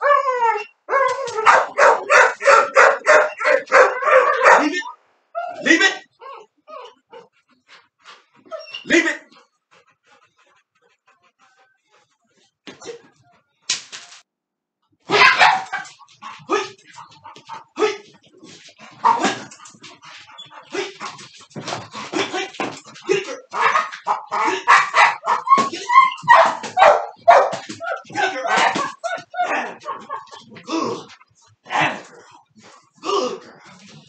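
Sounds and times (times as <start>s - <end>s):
puppy barking: 0.9s - 5.7s, 15.1s - 16.0s, 19.0s - 19.5s, 23.5s - 30.4s
puppy scuffling: 15.3s - 31.5s.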